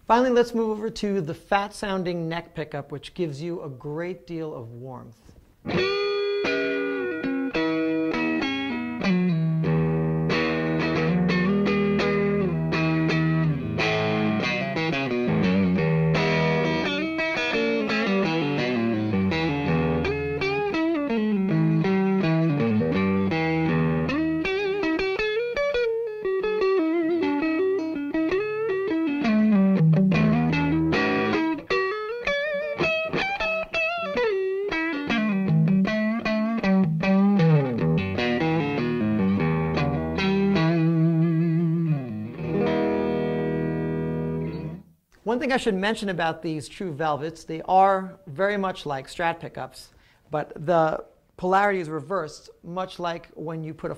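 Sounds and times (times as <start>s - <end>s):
electric guitar lead with vibrato: 5.6s - 44.9s.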